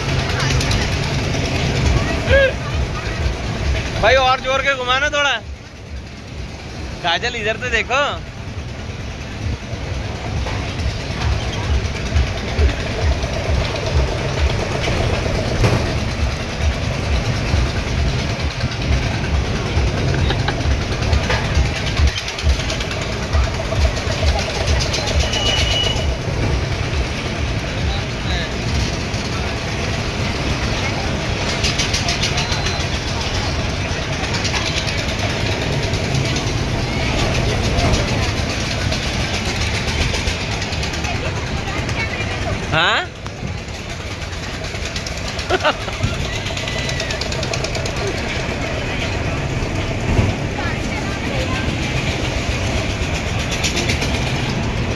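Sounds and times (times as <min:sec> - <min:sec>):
fairground noise and voices: 0:00.0 - 0:54.9.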